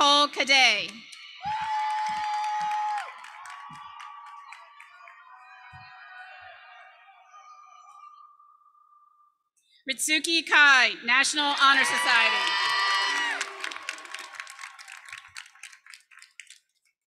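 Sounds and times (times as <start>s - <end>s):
audience clapping: 0.8s - 5.8s, 11.5s - 17.0s
audience shouting and whooping: 1.1s - 7.3s, 11.3s - 15.2s.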